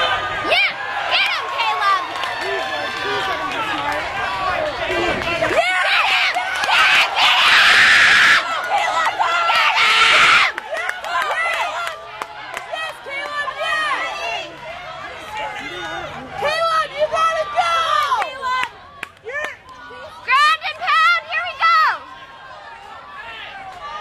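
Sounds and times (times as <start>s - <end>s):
crowd cheering: 0.0s - 24.0s
voices shouting and calling out: 0.0s - 24.0s.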